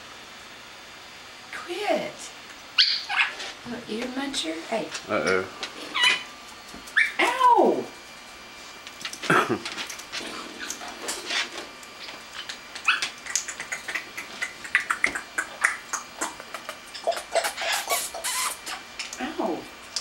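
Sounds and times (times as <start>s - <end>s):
parrots chattering: 2.8s - 3.5s, 5.8s - 6.3s, 12.8s - 18.9s.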